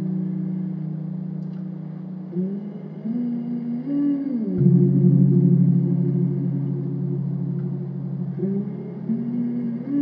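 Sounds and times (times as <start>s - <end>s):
ambient synth drone: 0.0s - 10.0s.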